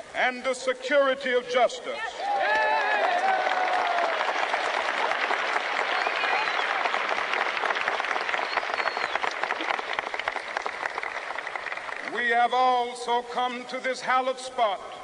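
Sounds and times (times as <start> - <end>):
large crowd applauding: 2.2 - 12.4.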